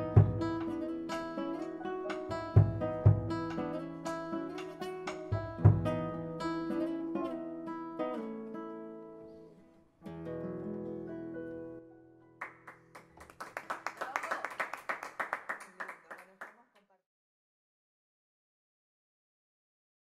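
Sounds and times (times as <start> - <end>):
classical guitar fingerstyle: 0.0 - 12.4.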